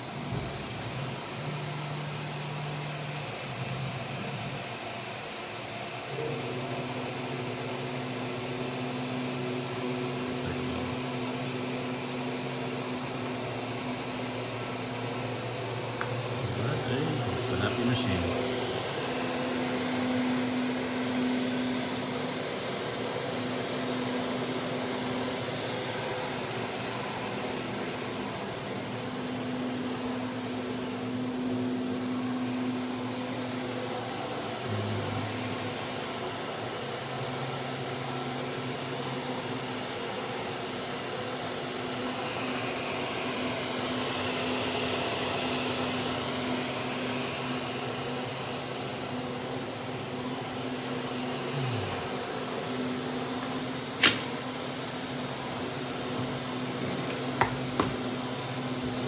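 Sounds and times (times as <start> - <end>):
industrial blower motor running: 0.0 - 59.0.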